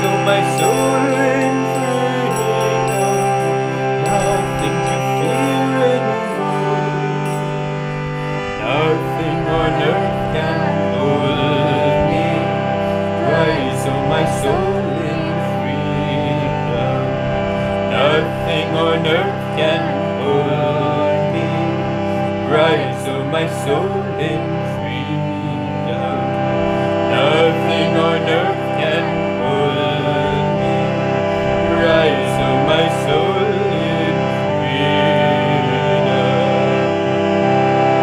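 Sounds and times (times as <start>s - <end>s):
man and woman singing chant: 0.0s - 7.6s, 8.2s - 36.8s
harmonium chords: 0.0s - 38.0s.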